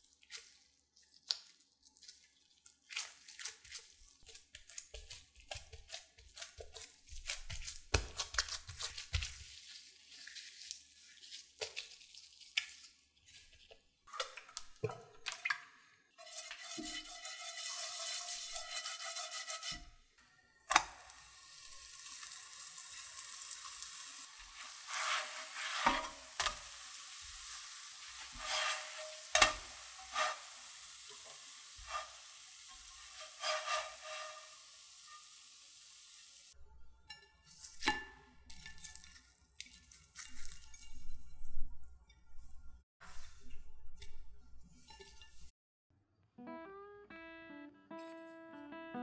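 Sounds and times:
flatbread sizzling in oil: 0:02.9 - 0:13.6, 0:16.2 - 0:19.9, 0:20.7 - 0:36.6
brush swishing oil: 0:08.8 - 0:13.8, 0:16.2 - 0:19.8, 0:24.3 - 0:34.6
spatula scraping and knocking pan: 0:16.2 - 0:20.0, 0:24.3 - 0:35.2.

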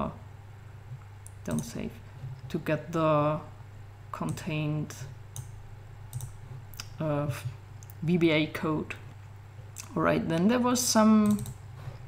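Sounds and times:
computer fan hum: 0:00.0 - 0:12.0
computer mouse clicks: 0:00.9 - 0:02.6, 0:05.3 - 0:07.0, 0:11.2 - 0:11.6.

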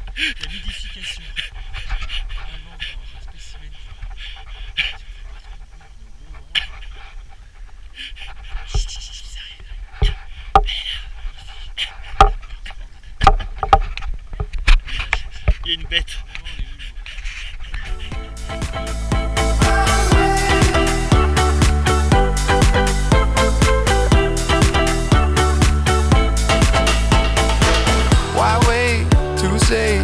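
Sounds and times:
person breathing hard: 0:00.0 - 0:06.0, 0:06.6 - 0:13.2, 0:16.2 - 0:24.5
man panting: 0:00.0 - 0:13.2, 0:14.8 - 0:24.5.

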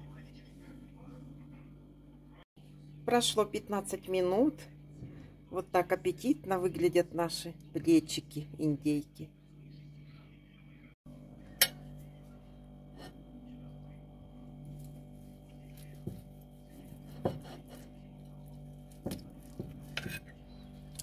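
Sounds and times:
steady low hum: 0:00.0 - 0:21.0
knife and fork cutting on plate: 0:19.1 - 0:20.4.

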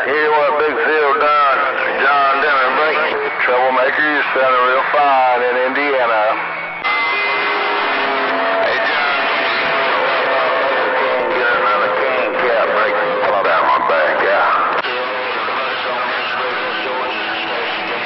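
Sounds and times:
loud radio static: 0:00.0 - 0:18.0
garbled distant radio voices: 0:08.1 - 0:18.0.

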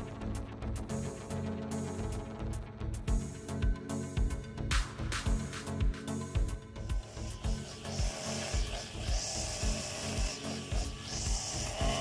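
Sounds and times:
background music with beat: 0:00.0 - 0:12.0
brush cutter line hissing through grass: 0:06.8 - 0:12.0.

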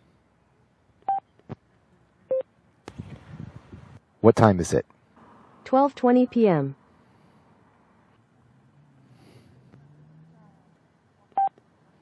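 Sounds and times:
short electronic beeps: 0:11.3 - 0:11.5.

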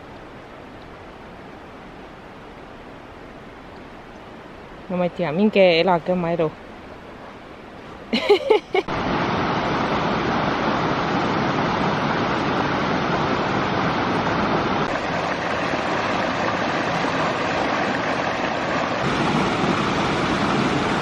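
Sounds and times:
stream rushing over stones: 0:00.0 - 0:21.0.

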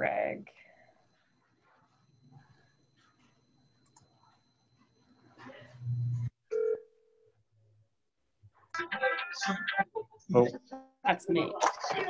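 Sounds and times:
low electrical hum: 0:00.0 - 0:08.7.

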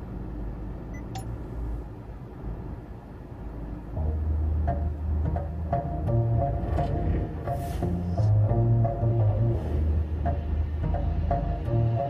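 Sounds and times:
music with deep bass drone: 0:03.9 - 0:12.0.

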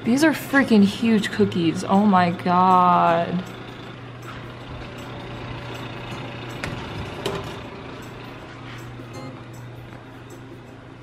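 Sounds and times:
kitchen fan humming: 0:00.0 - 0:11.0.

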